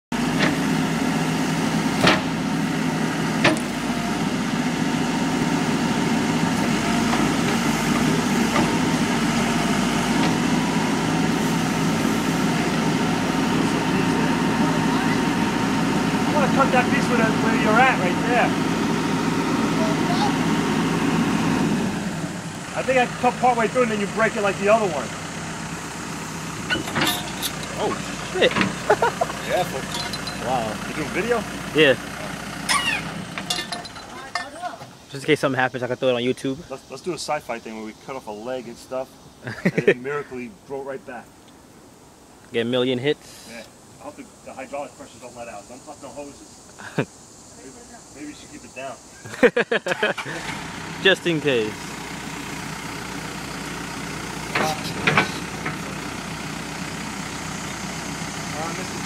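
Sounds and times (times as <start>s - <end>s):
diesel engine running: 0.1s - 42.4s, 43.2s - 59.0s.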